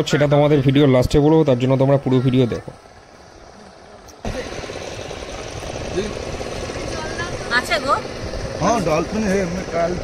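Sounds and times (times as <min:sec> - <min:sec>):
boat engine chugging: 0:02.2 - 0:10.0.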